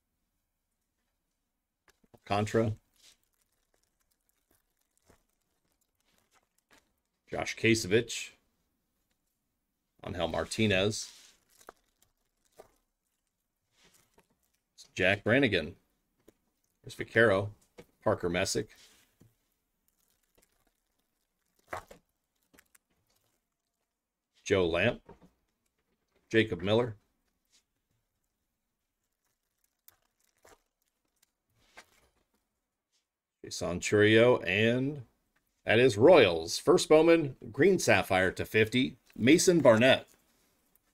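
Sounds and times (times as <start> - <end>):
handling of trading cards: 0.8 - 7.8, 10.2 - 15.6, 16.2 - 24.0, 25.0 - 33.1.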